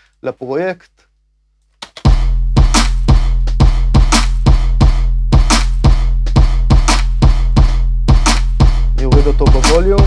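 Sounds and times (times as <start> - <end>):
clap and snare hits: 1.8 - 2.2, 2.8 - 4.6, 5.4 - 7.5, 8.1 - 8.8
deep kick drum: 2.1 - 10.0.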